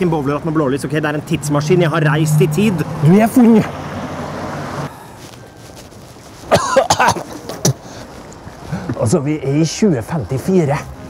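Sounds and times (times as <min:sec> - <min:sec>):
man coughing: 0:06.5 - 0:08.0.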